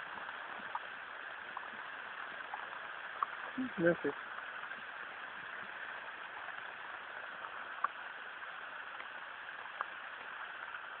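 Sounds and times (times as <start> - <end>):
heavy rain hissing: 0.0 - 11.0
raindrops tapping: 0.0 - 11.0.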